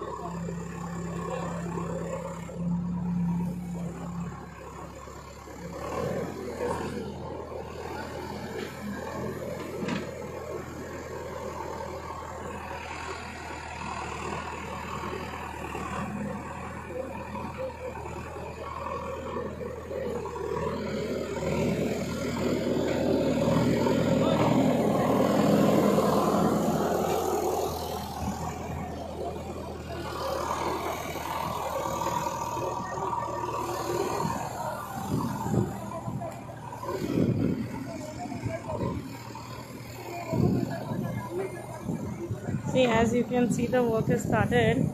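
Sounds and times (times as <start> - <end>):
diesel engine running: 0.0 - 44.9.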